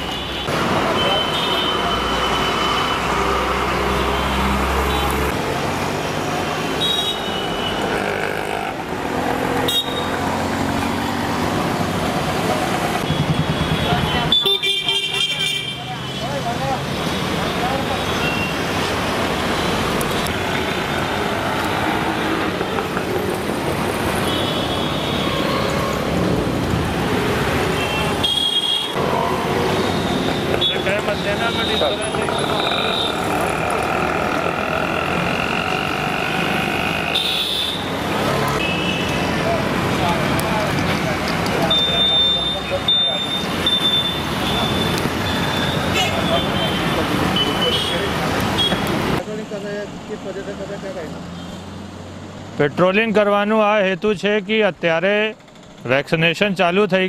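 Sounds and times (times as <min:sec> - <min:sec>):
busy street traffic: 0:00.0 - 0:57.0
vehicle horns tooting: 0:09.6 - 0:10.2, 0:13.0 - 0:16.3, 0:24.2 - 0:26.1, 0:27.7 - 0:29.0, 0:29.8 - 0:37.9, 0:38.5 - 0:39.4, 0:41.6 - 0:49.1
people talking: 0:30.7 - 0:34.5.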